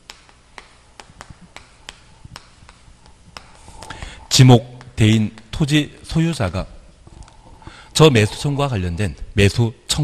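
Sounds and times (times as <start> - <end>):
chalk tapping on chalkboard: 0.0 - 4.1, 4.7 - 5.7.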